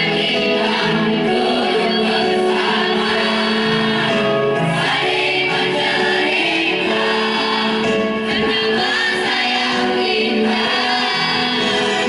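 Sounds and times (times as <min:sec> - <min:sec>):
men's choir singing: 0:00.0 - 0:12.0.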